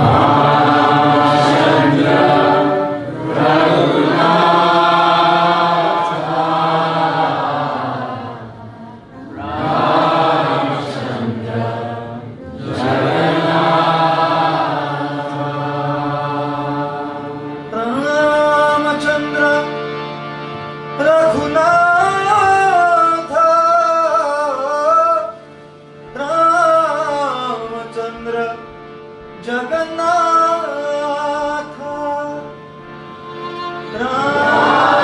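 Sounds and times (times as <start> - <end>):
harmonium: 0.0 - 35.0.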